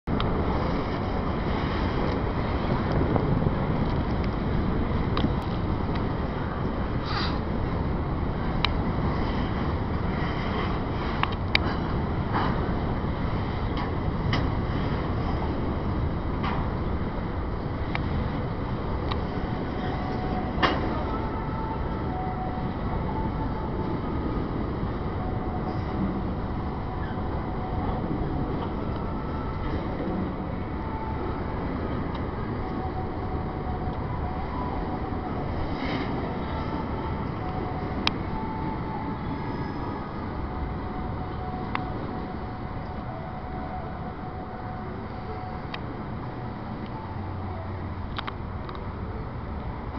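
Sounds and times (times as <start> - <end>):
train wheels rumbling on rails: 2.0 - 21.1.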